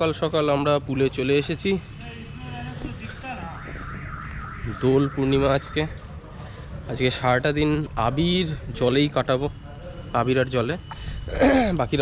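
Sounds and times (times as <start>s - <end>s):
warbling electronic alarm tone: 3.5s - 6.0s.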